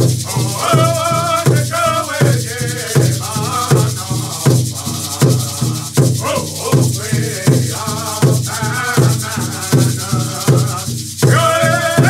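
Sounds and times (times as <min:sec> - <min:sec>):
hand rattles shaking: 0:00.0 - 0:12.0
large drum beating steadily: 0:00.0 - 0:12.0
men singing together: 0:00.0 - 0:12.0.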